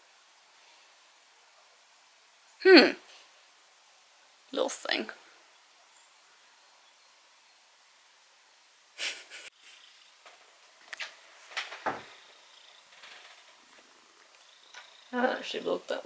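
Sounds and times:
cat purring: 12.1 - 15.6.

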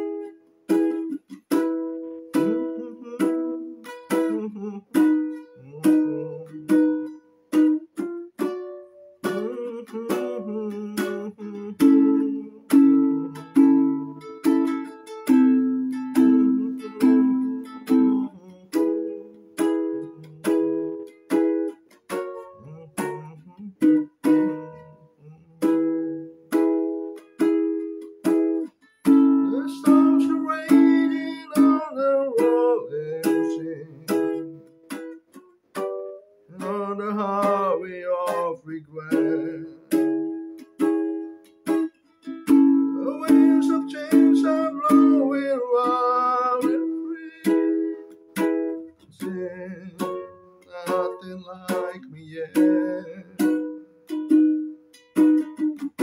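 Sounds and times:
ukulele strumming chords: 0.0 - 56.0.

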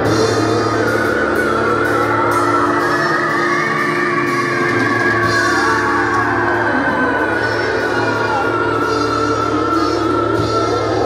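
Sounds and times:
rock band playing: 0.0 - 11.0.

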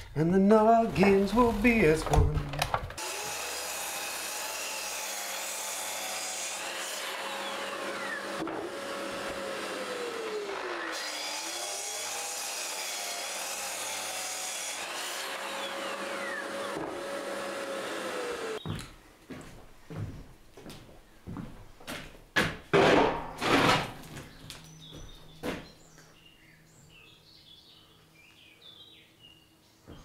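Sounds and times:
dust extractor running: 3.0 - 14.2, 14.8 - 18.6
mitre saw cutting wood: 3.0 - 18.6, 23.4 - 23.9.

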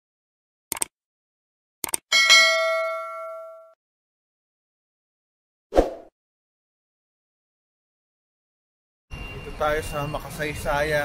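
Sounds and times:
quick double click: 0.7 - 0.9
bell chime ringing: 2.1 - 3.8.

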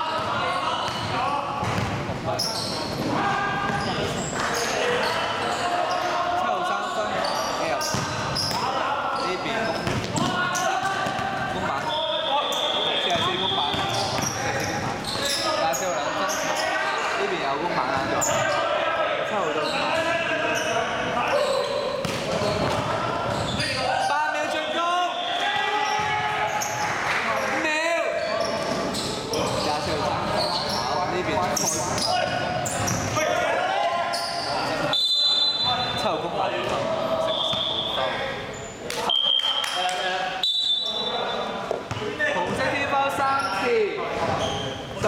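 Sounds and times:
players calling out: 0.0 - 45.0
sneakers squeaking on floor: 0.2 - 17.0, 19.4 - 23.8, 25.2 - 26.8, 28.2 - 33.4, 34.1 - 39.8, 40.4 - 45.0.

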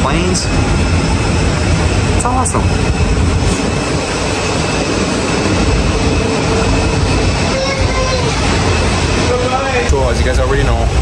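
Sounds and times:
jet airliner roar: 0.0 - 11.0.

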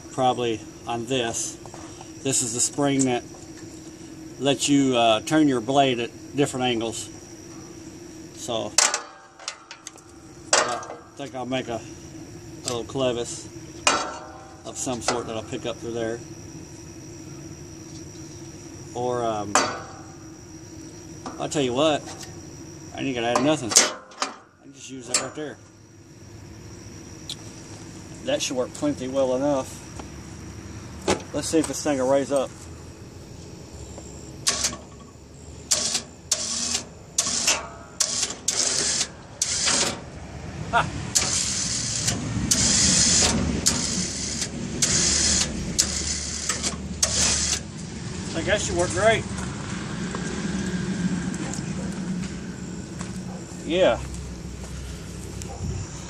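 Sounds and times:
metal clank: 8.8 - 11.1, 13.8 - 15.3, 19.5 - 20.1, 23.3 - 24.5
electric winch running: 34.4 - 35.0, 35.6 - 53.2.

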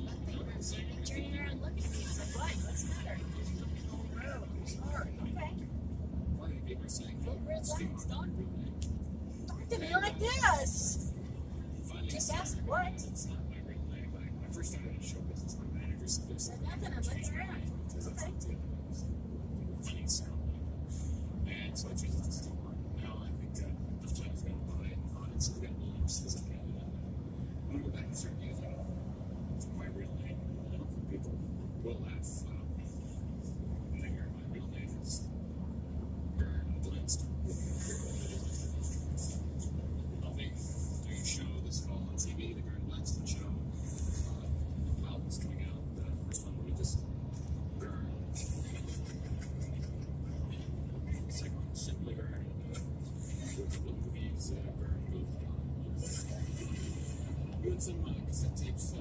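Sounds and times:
car engine and tyres humming: 0.0 - 59.0.

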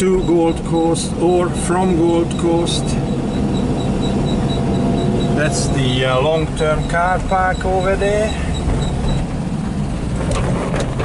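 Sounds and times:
road and wind noise: 0.0 - 11.0
van engine droning: 0.0 - 11.0.

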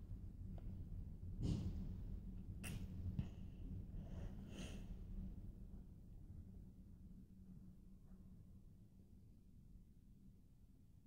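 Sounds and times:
soft breath: 3.2 - 5.1.

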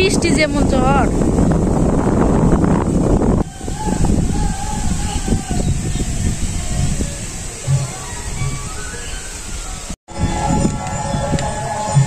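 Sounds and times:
strong wind on microphone: 0.0 - 12.0.

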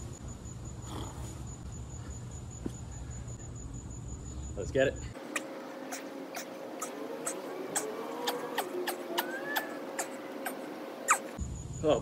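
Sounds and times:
faint steady hum: 0.0 - 12.0
squeaky sped-up breathing: 5.2 - 11.4.

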